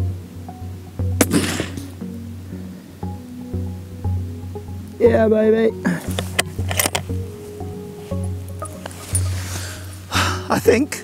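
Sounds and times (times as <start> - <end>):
background music: 0.0 - 11.0
rifle shot: 1.2 - 1.9.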